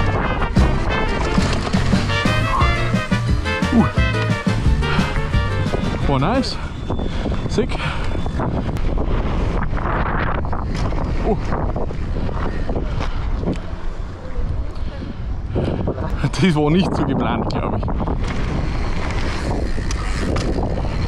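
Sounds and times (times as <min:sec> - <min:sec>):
tyres rolling on loose dirt: 0:00.0 - 0:06.5
wind buffeting microphone: 0:00.0 - 0:21.0
bike rattling and knocking: 0:00.1 - 0:06.3, 0:17.9 - 0:21.0.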